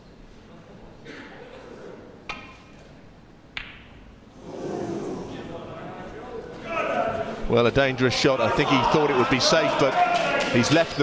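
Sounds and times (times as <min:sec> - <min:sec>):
crowd noise in hall: 0:00.0 - 0:11.0.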